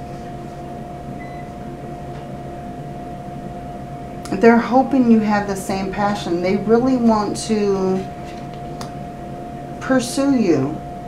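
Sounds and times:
mid-pitched whine: 0:00.0 - 0:11.0
steady background hum: 0:00.0 - 0:11.0.

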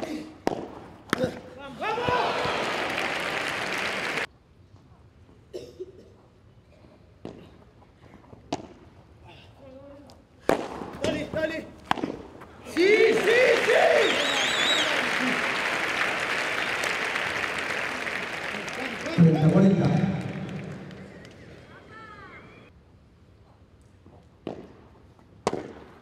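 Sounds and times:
crowd cheering and whistling: 0:01.8 - 0:04.3, 0:12.7 - 0:22.7.

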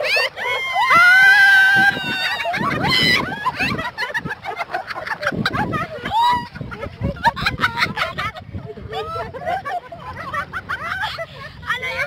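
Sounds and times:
laughing and chattering voices: 0:00.0 - 0:12.0.

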